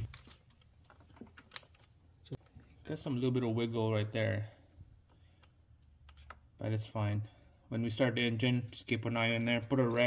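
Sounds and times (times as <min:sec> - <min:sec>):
metal fittings clicking: 0:01.4 - 0:01.9.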